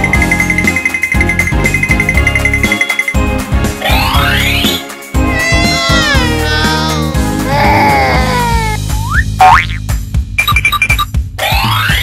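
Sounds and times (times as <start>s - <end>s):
children's background music: 0.0s - 12.0s.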